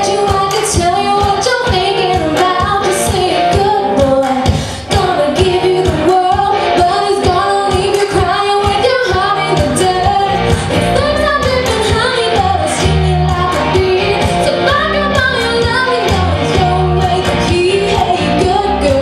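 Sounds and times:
backing music with steady beat: 0.0s - 19.0s
woman singing into microphone: 0.0s - 19.0s.

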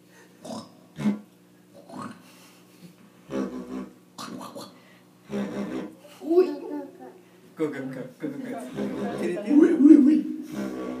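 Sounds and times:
didgeridoo grunting blasts: 3.3s - 3.9s, 10.5s - 11.0s.

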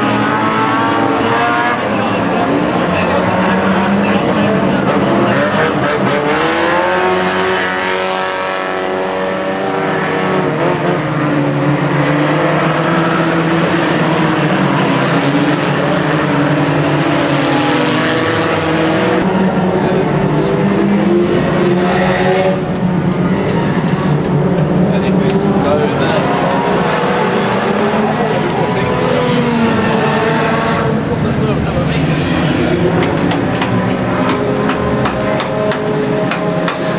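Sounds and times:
indistinct voices: 0.0s - 36.9s
small race car engines revving: 0.0s - 36.9s.

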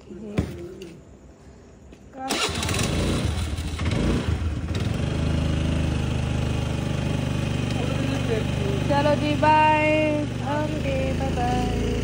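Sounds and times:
motor scooter engine starting and idling: 2.2s - 12.0s.

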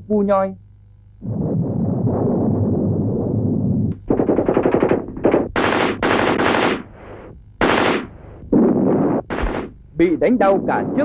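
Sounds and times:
machine-gun fire bursts: 4.0s - 9.8s.

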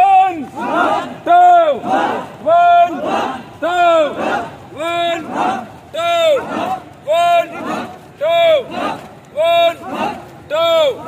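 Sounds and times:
group of men shouting in unison: 0.0s - 11.0s.

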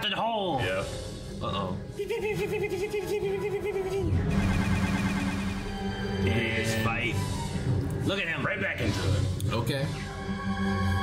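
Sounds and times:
cartoon action music: 2.0s - 9.3s.

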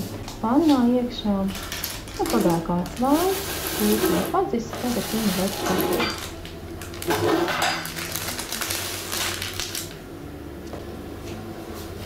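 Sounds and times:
parchment rustling on countertop: 0.0s - 10.0s.

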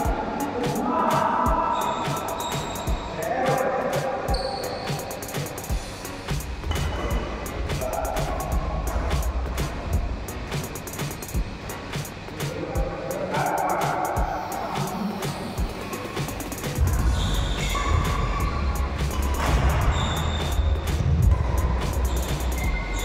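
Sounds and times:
music playing: 0.0s - 23.0s.

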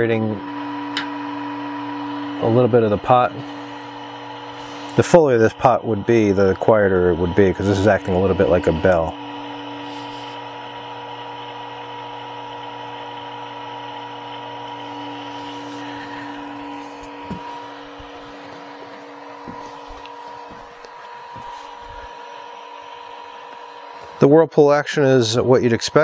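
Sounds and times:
pump humming: 0.0s - 25.9s.

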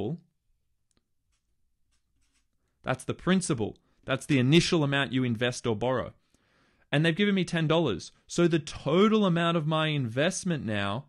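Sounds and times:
marker scratching on paper: 1.9s - 2.5s
person speaking: 2.2s - 6.2s.

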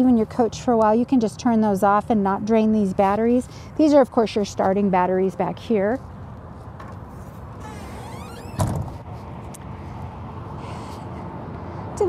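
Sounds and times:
outdoor background noise: 0.0s - 12.0s
door hinge squeak: 7.6s - 8.8s
metal door thumping shut: 7.8s - 8.9s.

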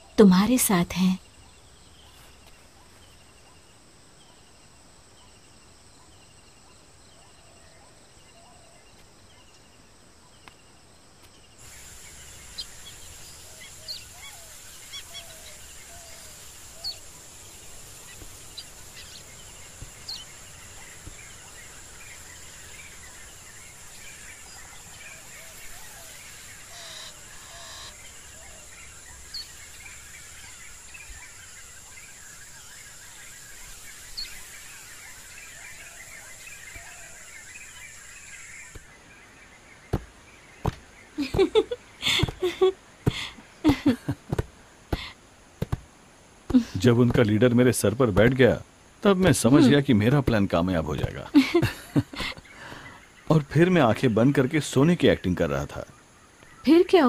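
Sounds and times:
bird chirps and calls: 11.6s - 38.9s
high-pitched insect drone: 21.6s - 36.4s
sharp knocks: 44.3s - 45.9s, 48.2s - 48.4s.

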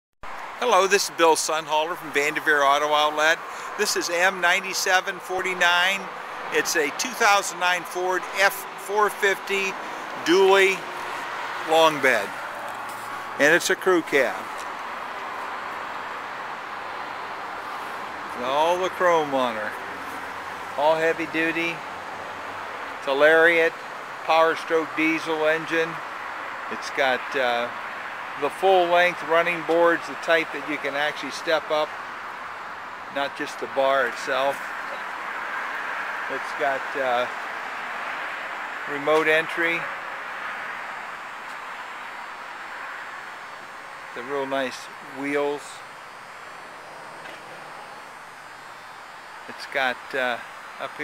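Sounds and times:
steady outdoor hiss: 0.3s - 51.0s.

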